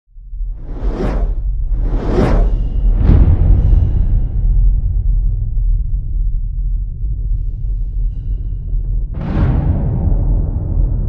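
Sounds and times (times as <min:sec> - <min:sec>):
deep low rumble: 0:00.1 - 0:11.0
whoosh: 0:00.5 - 0:05.2.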